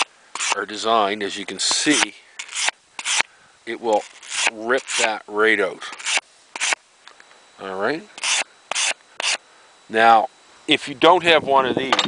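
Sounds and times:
file card scratching metal file: 0.0s - 0.6s, 1.7s - 3.2s, 3.9s - 5.2s, 5.9s - 6.8s, 8.2s - 9.4s.

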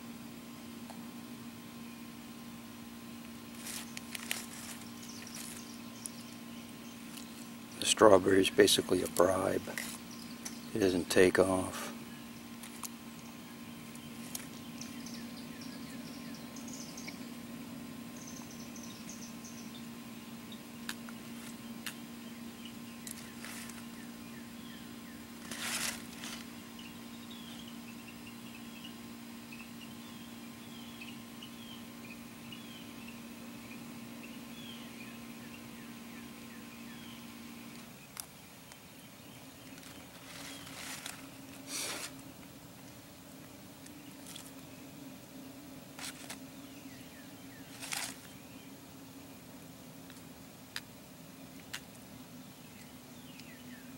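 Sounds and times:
steady low hum: 0.0s - 53.9s
small birds chirping: 0.7s - 53.9s.

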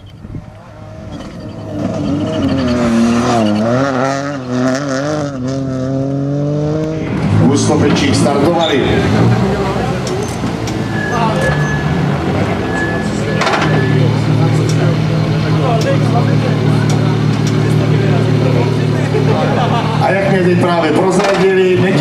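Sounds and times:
rally car engine running: 0.0s - 22.0s.

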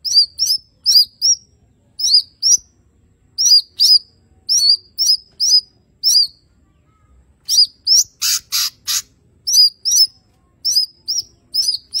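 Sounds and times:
bird singing chirped notes: 0.0s - 12.0s.

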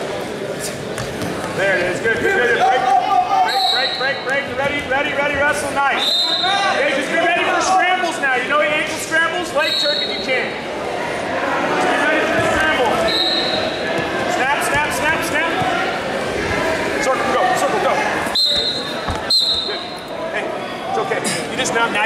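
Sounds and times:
voices talking and calling out: 1.6s - 22.0s.

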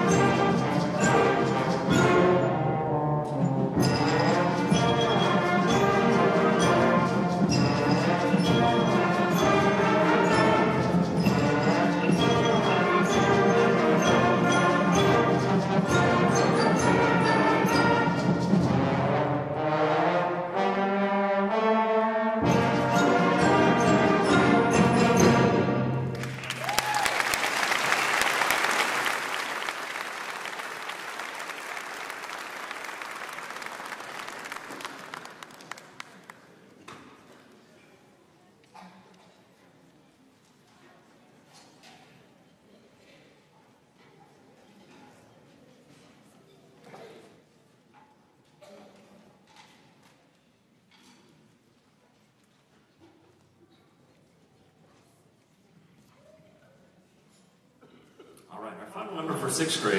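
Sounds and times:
audience applause: 26.1s - 36.5s.

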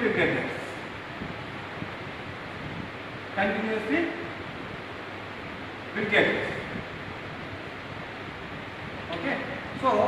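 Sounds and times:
man speaking: 0.0s - 0.9s, 3.4s - 4.4s, 9.1s - 10.0s
room noise hiss: 0.0s - 10.0s.

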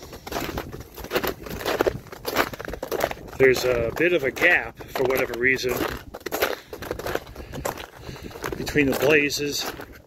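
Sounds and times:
boots crunching in snow: 0.0s - 10.0s.

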